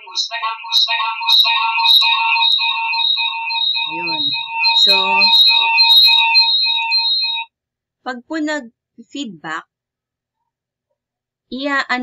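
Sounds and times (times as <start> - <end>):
shrill audio feedback ringing: 0.0 - 7.5.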